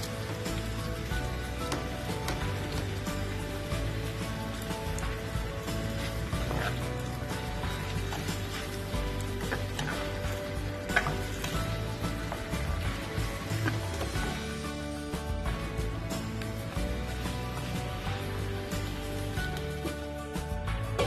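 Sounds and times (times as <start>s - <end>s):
background music: 0.0s - 21.0s
food sizzling in a wok: 0.0s - 21.0s.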